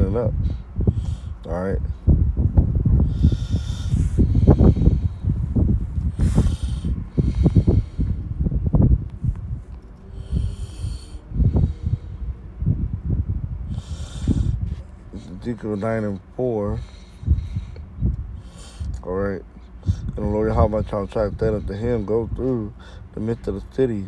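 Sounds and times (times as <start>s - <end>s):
low rumbling bumps on microphone: 0.0s - 15.4s
man breathing heavily: 0.4s - 16.0s, 16.7s - 20.2s, 22.7s - 23.2s.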